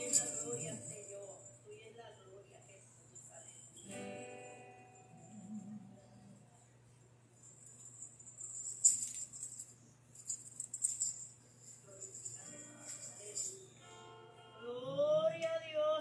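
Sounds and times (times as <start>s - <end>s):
tambourine jingling: 0.0s - 1.7s, 3.1s - 5.3s, 7.3s - 13.8s
acoustic guitar notes: 3.8s - 6.3s.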